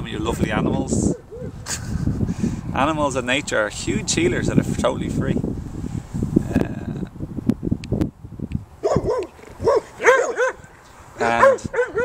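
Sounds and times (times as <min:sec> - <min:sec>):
dog yipping barks: 0:08.8 - 0:12.0.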